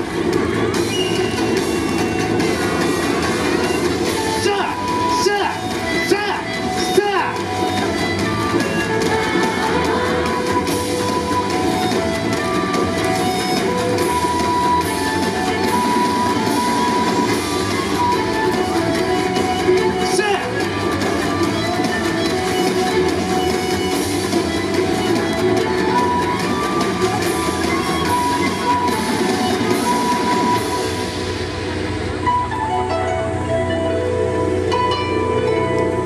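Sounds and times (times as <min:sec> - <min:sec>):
dance music over loudspeakers: 0:00.0 - 0:31.3.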